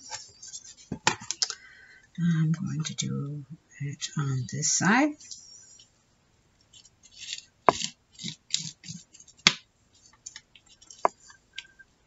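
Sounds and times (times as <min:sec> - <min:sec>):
woman talking: 0:02.2 - 0:05.3.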